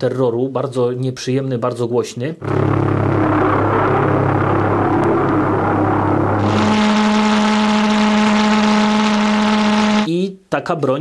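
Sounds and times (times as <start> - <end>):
pulsejet buzzing: 2.4 - 10.1.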